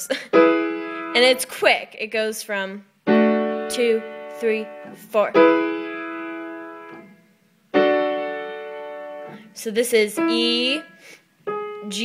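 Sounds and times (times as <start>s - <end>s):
piano chord: 0.3s - 1.5s, 3.1s - 9.5s.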